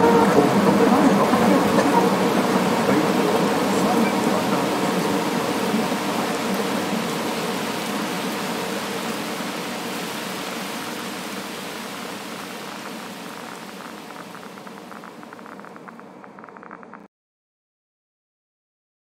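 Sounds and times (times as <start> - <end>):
steady rain: 0.0 - 17.1.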